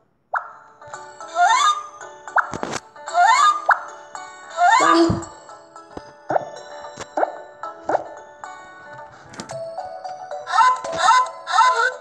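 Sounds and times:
light background music: 0.4 - 12.0.

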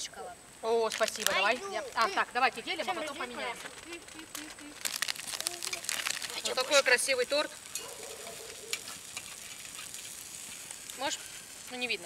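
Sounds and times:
sweet wrappers crinkling: 0.8 - 12.0.

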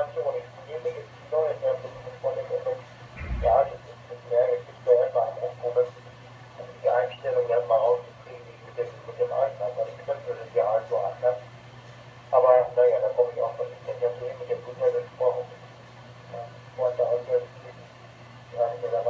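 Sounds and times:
steady low hum: 0.0 - 5.8
voice over radio loudspeaker: 18.6 - 19.0.

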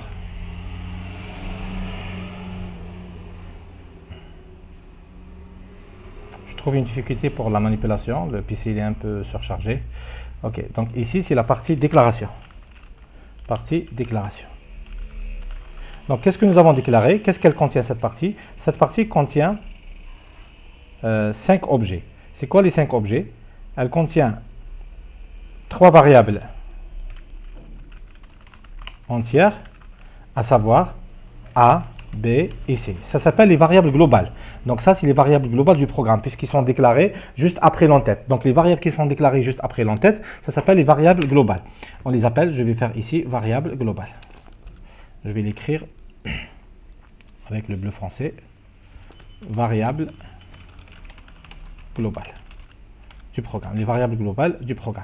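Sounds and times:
computer fan humming: 0.0 - 55.0
keyboard typing: 10.7 - 19.0, 26.3 - 30.2, 31.4 - 34.3, 39.5 - 42.0, 44.0 - 44.9, 48.6 - 54.0.

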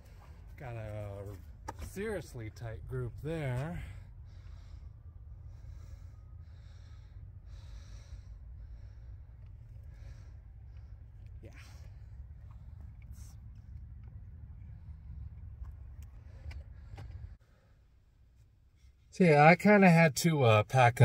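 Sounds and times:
steady low rumble: 0.0 - 18.9
soft breaths: 2.6 - 19.1.

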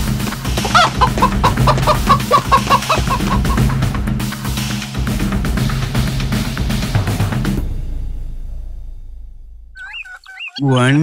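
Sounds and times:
chicken clucking and squawking: 0.0 - 3.7, 9.8 - 10.8
background music: 0.0 - 10.8.

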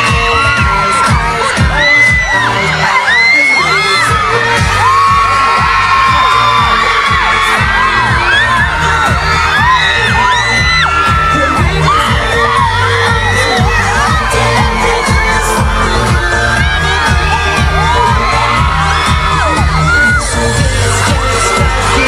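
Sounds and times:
crowd screaming and whooping: 0.0 - 22.0
pop dance music with steady beat: 0.0 - 22.0.

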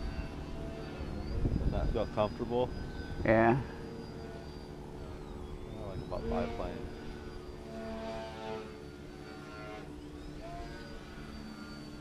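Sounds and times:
electric motor and propeller whining: 0.0 - 12.0.

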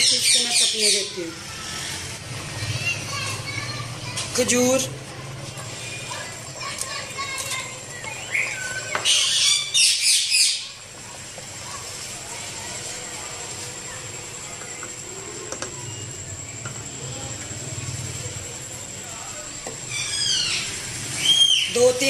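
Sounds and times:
small birds chirping: 0.0 - 4.9, 5.5 - 12.9, 19.6 - 22.0
low background noise: 0.0 - 22.0.

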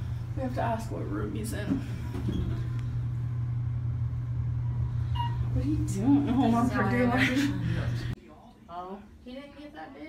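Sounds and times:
elevator rumbling and humming: 0.0 - 8.2.

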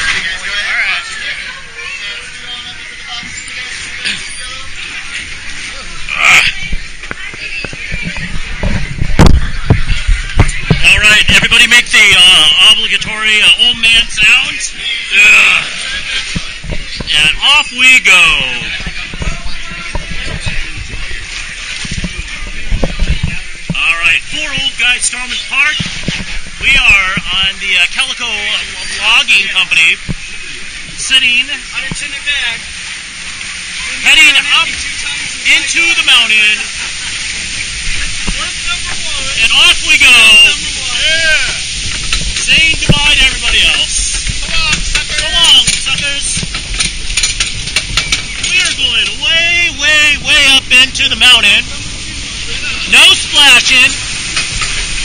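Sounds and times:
flowing water rushing: 0.0 - 55.0
ride clicks and knocks: 43.8 - 49.2.

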